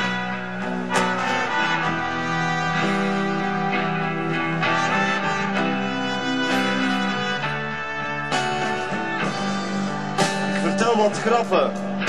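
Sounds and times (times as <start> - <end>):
live band instrumental: 0.0 - 12.0.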